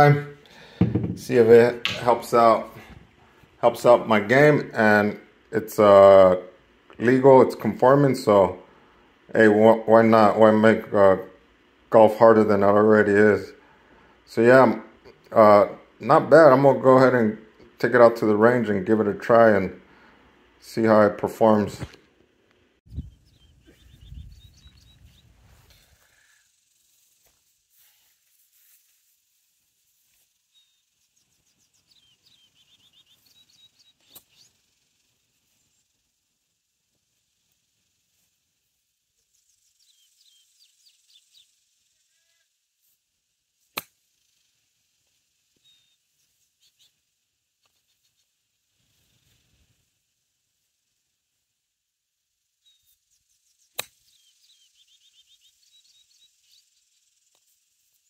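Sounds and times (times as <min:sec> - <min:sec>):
faint chirping trills: 0:22.9 - 0:51.6, 0:52.2 - 0:58.0.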